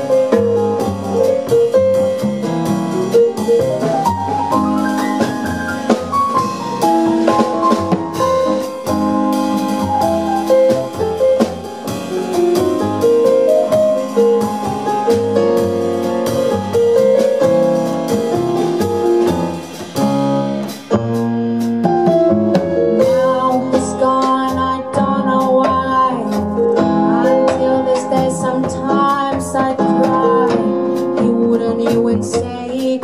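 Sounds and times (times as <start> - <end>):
keyboard piano melody: 0.0 - 32.3
drum kit with cymbals: 0.0 - 33.0
upright double bass: 0.0 - 33.0.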